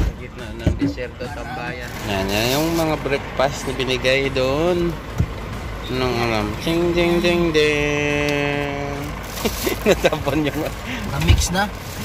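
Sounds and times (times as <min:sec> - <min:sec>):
man singing a playful tune: 0:06.2 - 0:09.1.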